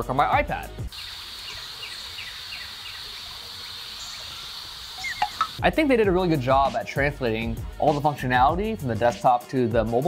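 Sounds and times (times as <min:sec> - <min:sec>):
insects buzzing: 0:00.9 - 0:05.6
insects chirping: 0:00.9 - 0:05.6.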